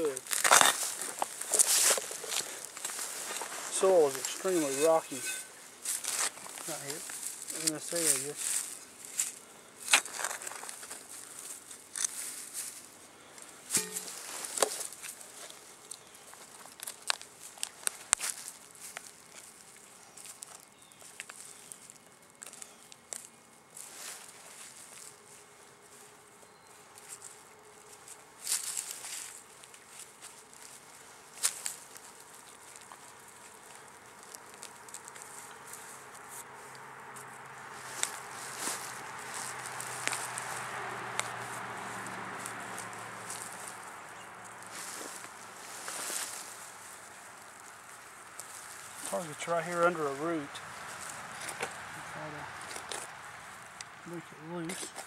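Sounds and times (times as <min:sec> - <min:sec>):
digging tool scraping dirt and stones: 0:00.0 - 0:08.4, 0:09.8 - 0:11.1, 0:11.9 - 0:12.6, 0:13.7 - 0:15.2.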